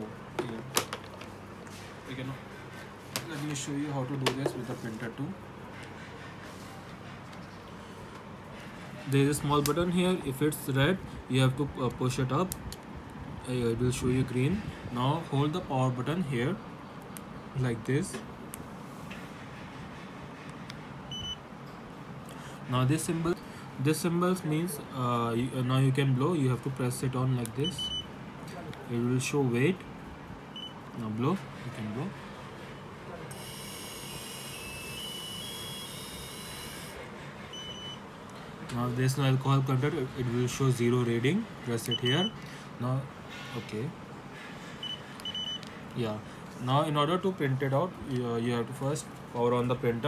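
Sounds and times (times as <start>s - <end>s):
breath analyzer beeping: 21.1s - 21.4s, 27.6s - 28.1s, 33.3s - 38.1s, 41.9s - 42.4s, 44.8s - 45.7s.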